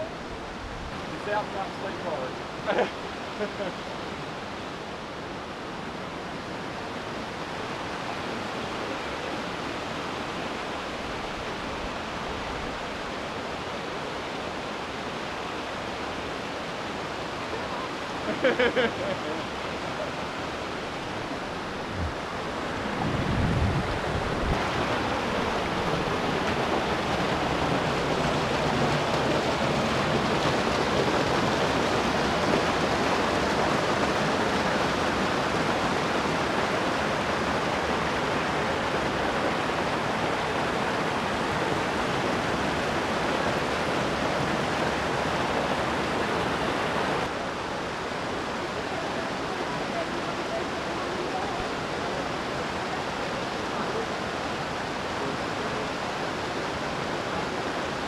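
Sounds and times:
creek rushing over boulders: 0.0s - 58.0s.

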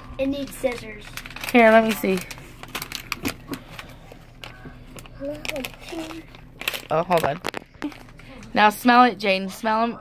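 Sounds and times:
plastic bag crinkling: 0.2s - 8.7s.

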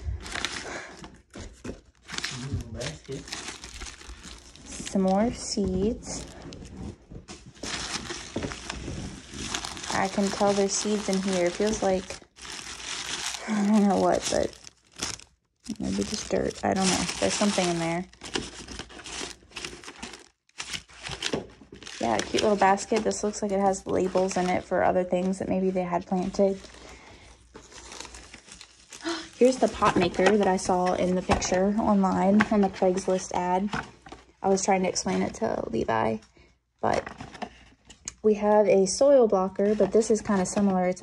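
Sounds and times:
plastic bags crinkling: 0.0s - 25.4s, 26.2s - 31.5s.

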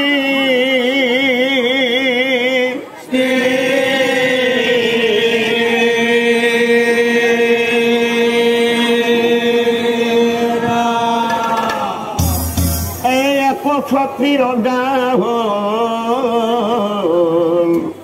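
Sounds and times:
man chanting with vibrato: 0.0s - 17.7s.

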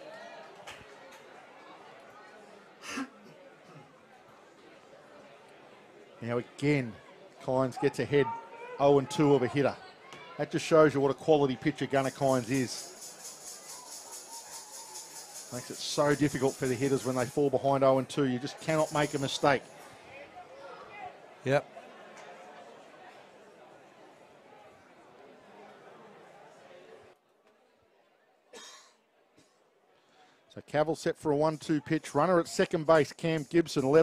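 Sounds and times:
distant crowd and stadium noise: 0.0s - 34.0s
faint music: 10.4s - 20.5s.

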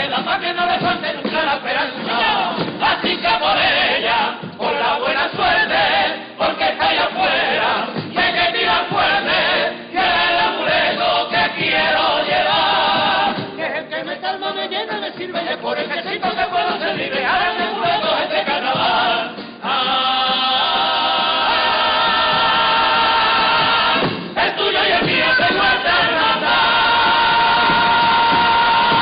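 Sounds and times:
choir singing in harmony: 1.8s - 13.6s, 15.7s - 29.0s.

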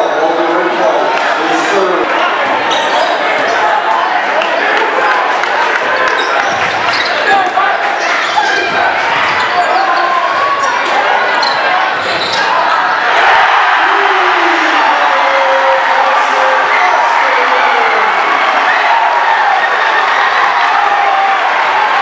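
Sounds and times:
crowd chattering: 0.0s - 22.0s.

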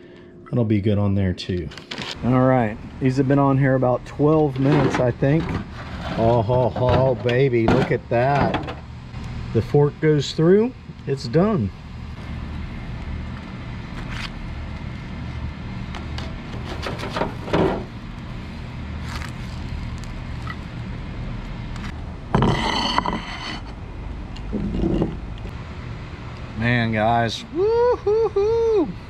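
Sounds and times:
metal spatula scraping grill grate: 4.5s - 7.2s, 22.4s - 23.8s.

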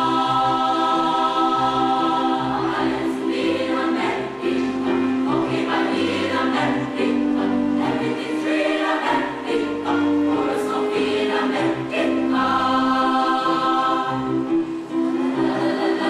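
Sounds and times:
choir singing in harmony: 0.0s - 16.0s.

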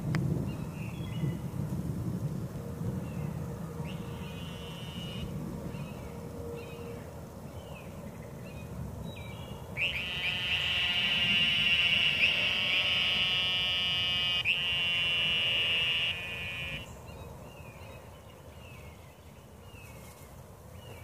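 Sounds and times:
cicada buzzing: 3.9s - 5.3s, 9.8s - 17.0s.

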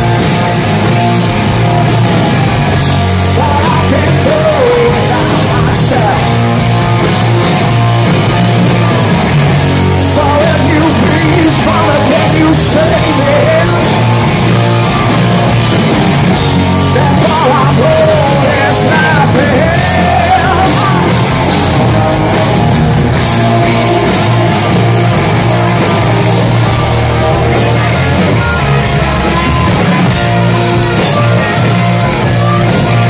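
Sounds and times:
hard rock band playing: 0.0s - 33.0s
electric guitar solo: 18.5s - 33.0s.

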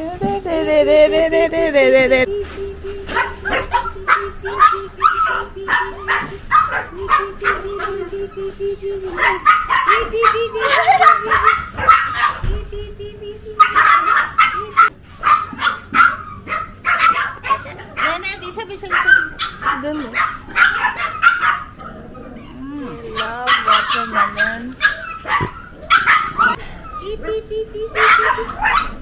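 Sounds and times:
puppy whining: 1.7s - 12.5s, 13.4s - 29.0s
puppies yipping and barking: 2.4s - 12.6s, 13.6s - 29.0s.

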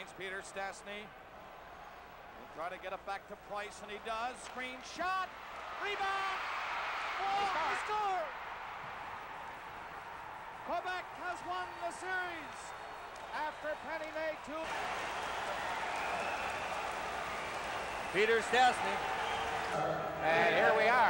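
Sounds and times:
arena background noise: 0.0s - 21.0s
commentator speaking: 20.2s - 21.0s.

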